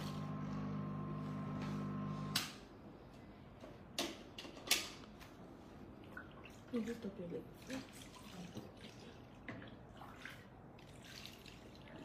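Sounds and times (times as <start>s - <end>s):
electrical motor hum: 0.0s - 2.7s.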